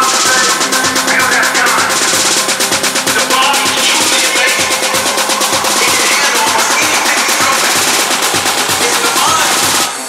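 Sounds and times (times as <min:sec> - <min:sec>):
techno kick drum: 0:00.0 - 0:09.9
rapid percussion roll: 0:00.0 - 0:10.0
synths: 0:00.0 - 0:10.0.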